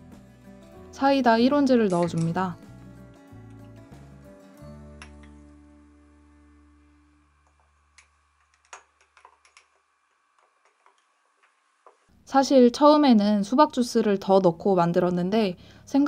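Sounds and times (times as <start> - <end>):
background music low chord: 0.0 - 7.4.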